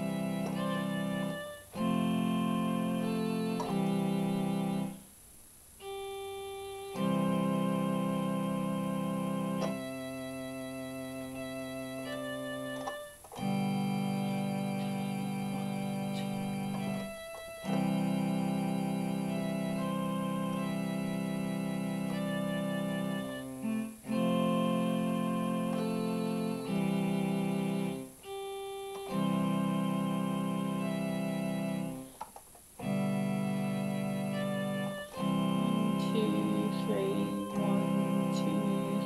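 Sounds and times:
electronic keyboard chords: 0.0 - 5.1, 5.8 - 39.0.

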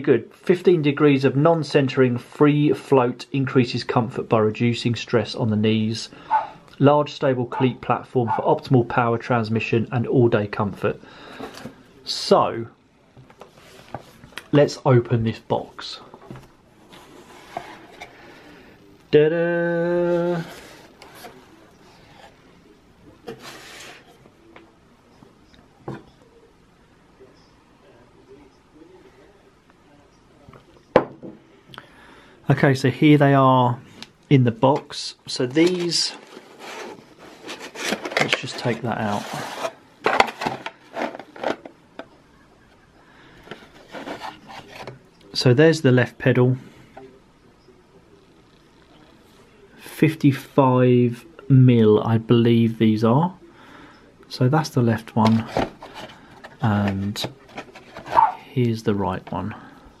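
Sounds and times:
scraping: 35.5 - 41.8, 43.5 - 45.0, 55.2 - 58.5
card box handling: 35.5 - 42.1, 55.2 - 58.4
pedal rubbing in foam packing: 55.3 - 58.5.

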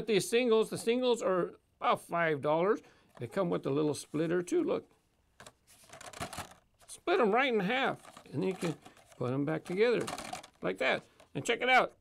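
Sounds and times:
plastic blister pack crinkling: 5.4 - 7.0, 7.8 - 11.6.

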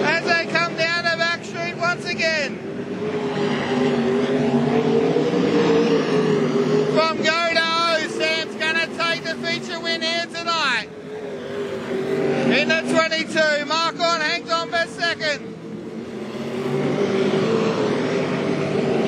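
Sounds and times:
commentator speaking: 0.0 - 2.6, 6.9 - 11.0, 12.4 - 15.5
race car engines roaring: 0.0 - 19.0.

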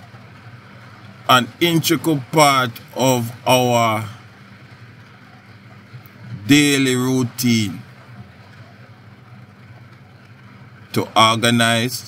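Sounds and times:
faint noise wash: 0.0 - 12.0
low background hum: 0.0 - 12.0.

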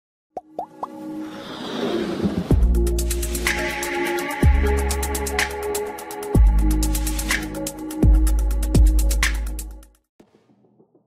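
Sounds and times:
rising pop blips: 0.4 - 1.0
musical riser: 1.0 - 4.3.

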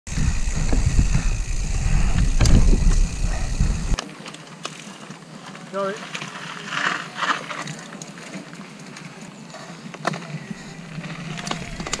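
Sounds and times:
bike knocks and rattles: 0.1 - 4.0, 10.0 - 12.0
wind rumble on microphone: 0.1 - 4.0
tyres rolling over gravel: 4.0 - 12.0.

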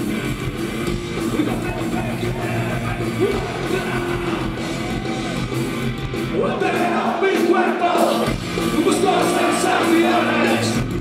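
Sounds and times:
punk band playing live: 0.0 - 11.0
singer shouting vocals: 1.3 - 5.4, 6.3 - 10.9.

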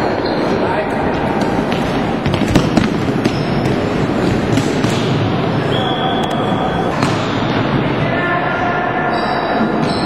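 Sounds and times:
sports hall din: 0.0 - 10.0.

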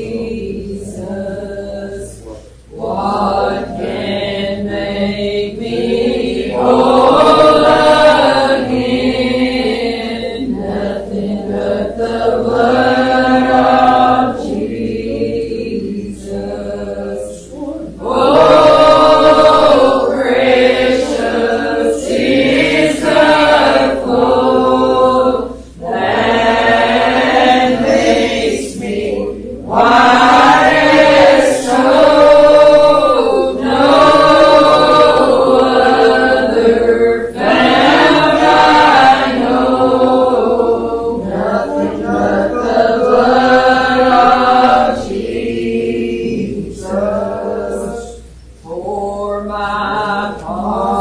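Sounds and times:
congregation singing a hymn: 0.0 - 51.0.

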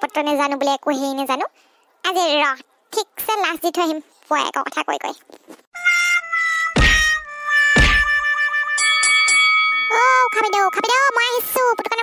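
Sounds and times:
deep heavy thuds: 7.8 - 8.2.

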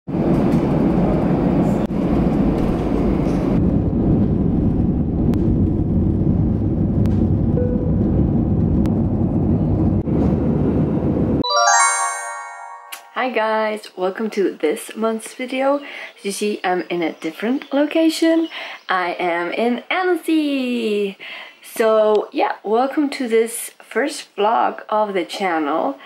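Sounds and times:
jet airliner cabin rumble: 0.1 - 11.4
chiming music sting: 11.4 - 13.2.

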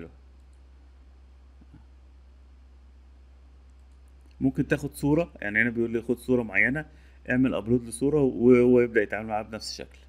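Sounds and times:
low electrical hum: 0.0 - 10.0
computer mouse clicks: 0.4 - 0.6.

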